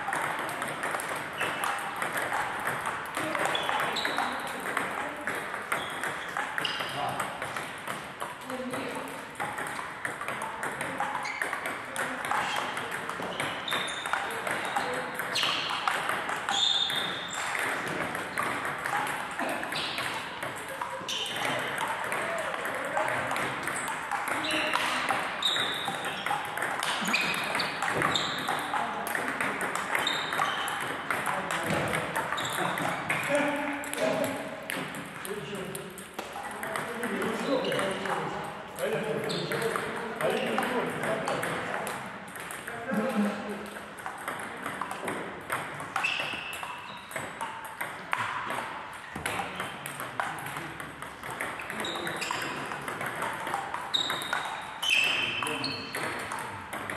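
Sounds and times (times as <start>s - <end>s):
table tennis balls clicking: 0.0s - 56.9s
people talking: 3.1s - 5.4s, 8.4s - 9.2s, 11.9s - 13.4s, 14.1s - 16.6s, 18.9s - 25.3s, 26.8s - 34.5s, 36.4s - 42.0s, 42.7s - 43.7s, 51.7s - 53.0s, 55.2s - 56.4s.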